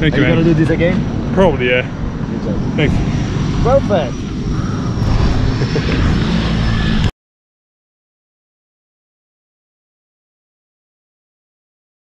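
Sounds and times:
propeller aircraft engine drone: 0.0s - 7.1s.

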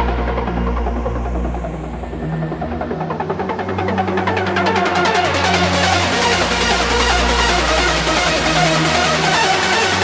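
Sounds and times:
filtered sweep rising in pitch: 0.0s - 10.0s
hardstyle beat with deep bass: 0.0s - 10.0s.

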